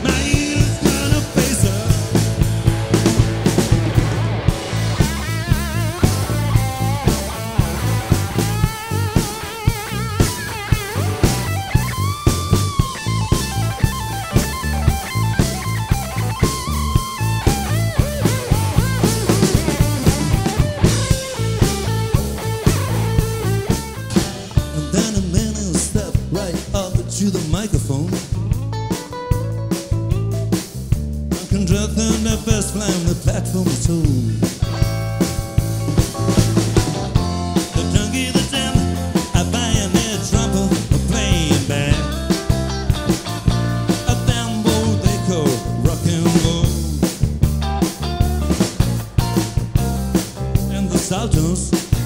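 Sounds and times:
bass guitar: 0:00.0 - 0:52.0
drum kit steady beat: 0:00.0 - 0:52.0
electric guitar lead: 0:00.0 - 0:52.0.

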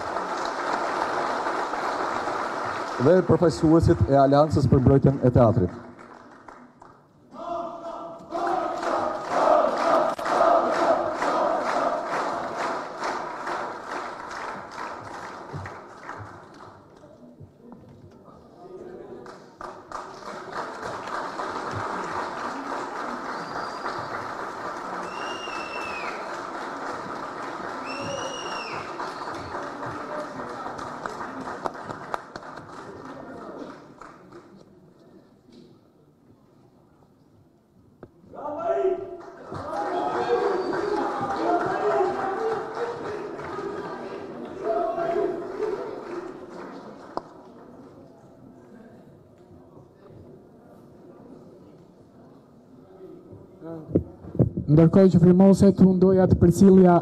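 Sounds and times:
audience applauding: 0:00.0 - 0:07.0, 0:08.3 - 0:17.0, 0:19.2 - 0:34.6, 0:39.2 - 0:47.8
rising and falling whistles: 0:25.0 - 0:26.2, 0:27.9 - 0:29.4.

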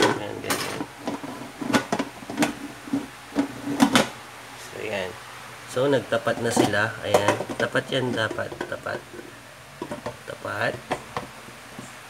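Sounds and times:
pot lid knocking and scraping: 0:00.0 - 0:04.2, 0:06.3 - 0:10.2, 0:10.8 - 0:11.9.

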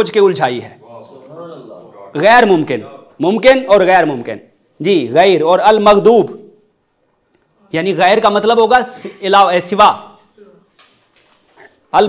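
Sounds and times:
man speaking: 0:00.0 - 0:06.6, 0:07.6 - 0:10.8, 0:11.6 - 0:12.0
faint indistinct room sounds: 0:00.0 - 0:12.0.

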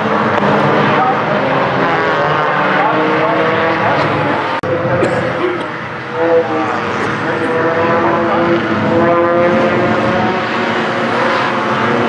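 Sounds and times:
race car engines at high revs: 0:00.0 - 0:12.0.

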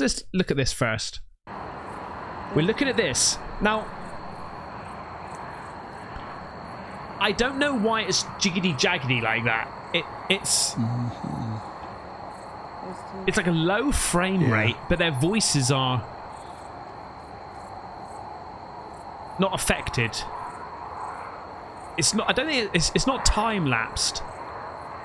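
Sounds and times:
constant hiss: 0:01.5 - 0:25.0
crickets chirping: 0:01.5 - 0:25.0.

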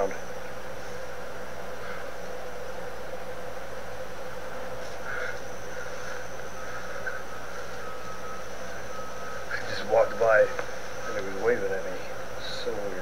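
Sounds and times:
insects droning: 0:00.0 - 0:13.0.

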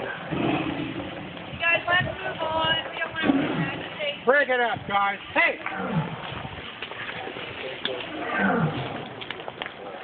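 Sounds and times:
tigers roaring: 0:00.0 - 0:01.3, 0:03.1 - 0:04.0, 0:05.6 - 0:06.4, 0:08.0 - 0:09.3.

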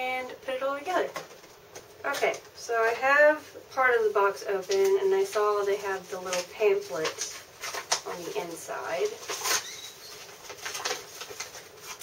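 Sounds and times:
paper pamphlet crinkling: 0:04.5 - 0:12.0.

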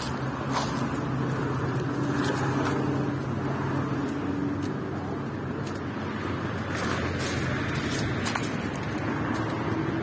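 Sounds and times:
engine hum: 0:00.0 - 0:10.0
road traffic noise: 0:00.0 - 0:10.0.

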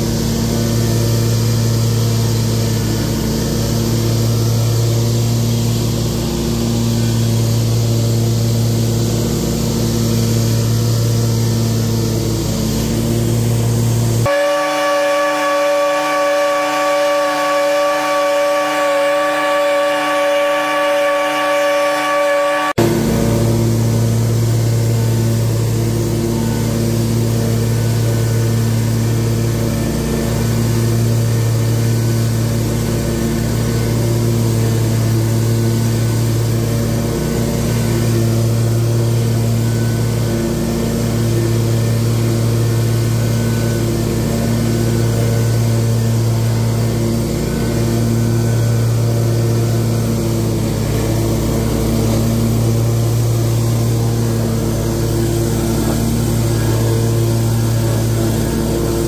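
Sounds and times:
mower engine running: 0:00.0 - 0:21.8, 0:22.8 - 0:59.0.

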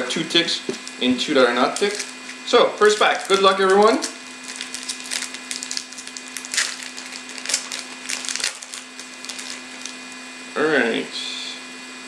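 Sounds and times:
wrapper tearing and crinkling: 0:00.8 - 0:10.2.

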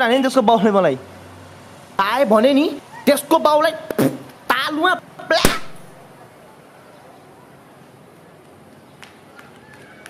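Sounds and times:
steady low hiss: 0:00.0 - 0:06.8
man exclaiming: 0:04.5 - 0:05.9.

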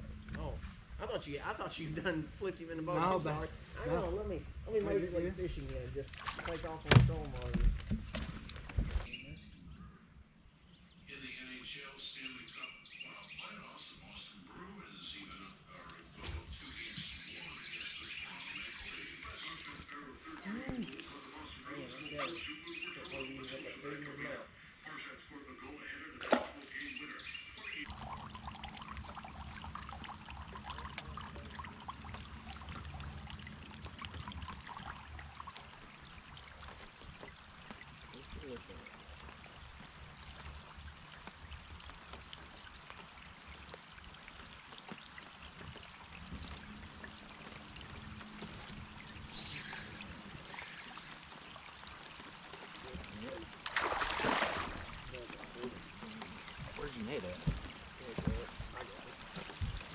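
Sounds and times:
water lapping against boat hull: 0:05.4 - 0:09.2, 0:27.8 - 0:59.9
fish thrashing and splashing: 0:06.0 - 0:09.1, 0:38.9 - 0:59.9.

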